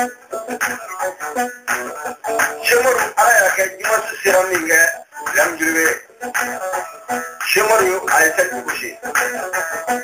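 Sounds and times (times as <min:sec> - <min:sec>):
instrumental backing: 0:00.0 - 0:10.0
man singing: 0:02.4 - 0:06.1, 0:07.4 - 0:09.3.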